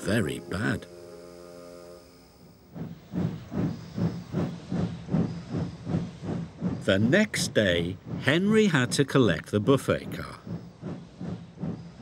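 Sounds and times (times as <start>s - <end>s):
held music chord: 0.0s - 2.6s
steam locomotive chuffing: 0.0s - 12.0s.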